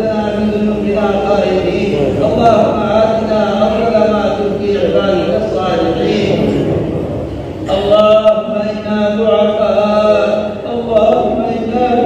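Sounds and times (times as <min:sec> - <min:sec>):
man chanting: 0:00.0 - 0:06.7, 0:07.7 - 0:12.0.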